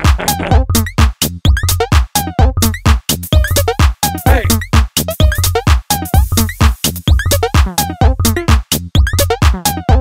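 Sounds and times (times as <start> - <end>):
drum machine beat: 0.0 - 10.0.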